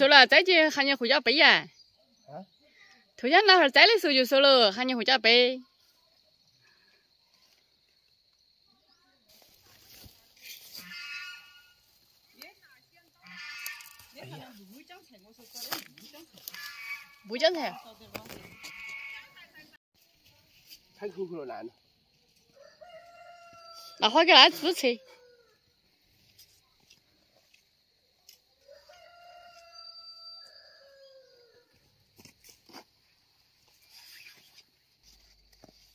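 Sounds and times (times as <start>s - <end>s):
faint rooster crowing: 22.5s - 24.2s, 24.8s - 25.8s, 28.6s - 31.9s.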